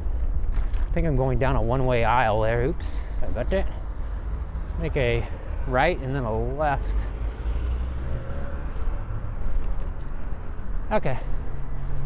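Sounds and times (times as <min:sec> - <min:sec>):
bicycle tyres rolling on asphalt: 0:00.0 - 0:06.0.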